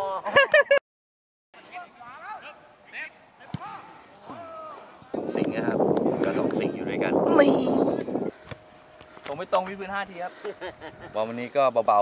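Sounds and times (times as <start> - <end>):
football being kicked: 3.5 - 3.8.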